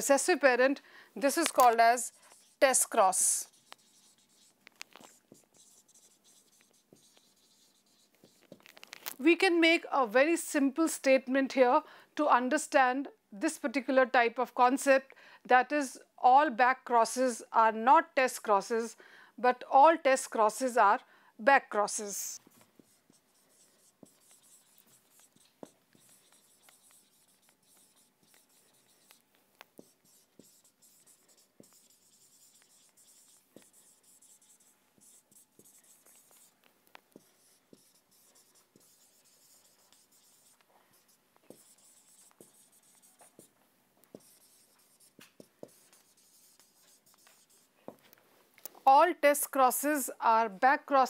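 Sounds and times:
marker writing on whiteboard: 1.2s - 9.2s, 21.9s - 48.1s.

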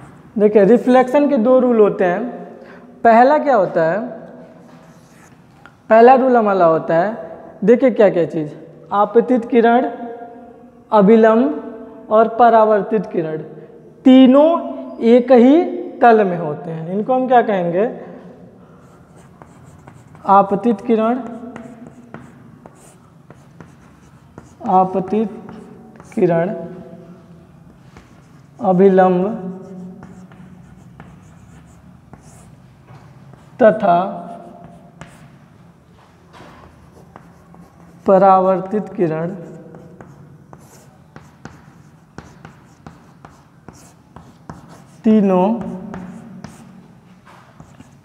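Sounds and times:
chalk writing on a blackboard: 4.6s - 5.4s, 18.8s - 27.0s, 27.6s - 35.4s, 36.5s - 48.0s.

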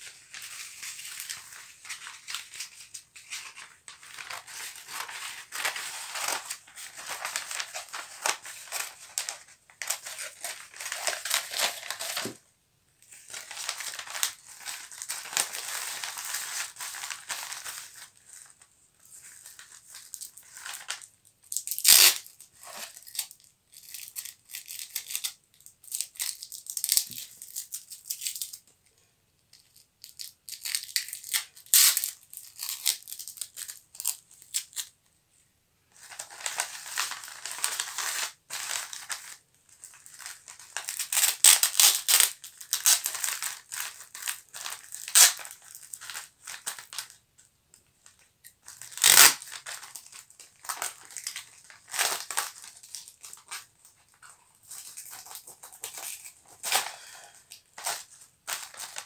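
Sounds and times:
paper and bubble wrap crinkling: 0.0s - 12.4s, 13.1s - 28.5s, 35.9s - 47.2s, 48.0s - 59.0s.

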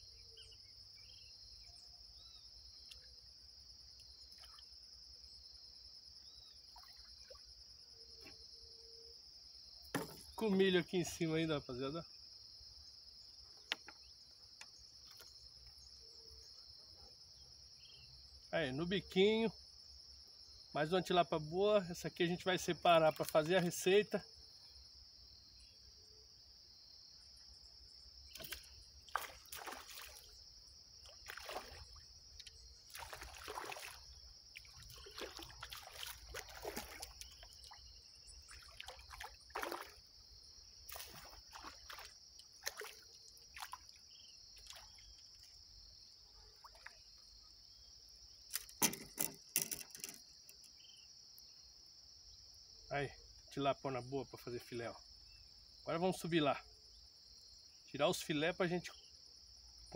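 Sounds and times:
crickets chirping: 0.0s - 59.9s
water splashes: 28.3s - 30.4s, 31.0s - 40.1s, 40.9s - 45.6s, 46.6s - 47.1s.

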